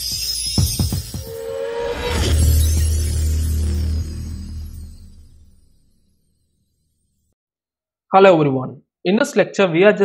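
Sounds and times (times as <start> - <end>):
glassy shattering shimmer: 0.0 - 7.2
short held tone: 1.1 - 6.1
deep bass hit: 1.2 - 6.2.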